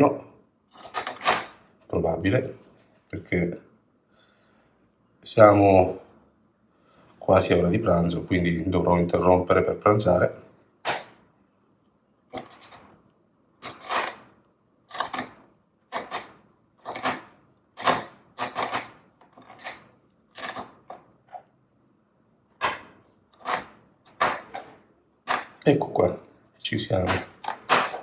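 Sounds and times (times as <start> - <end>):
knife chopping on steel worktop: 14.9 - 21.1, 22.6 - 25.6, 27.0 - 28.0.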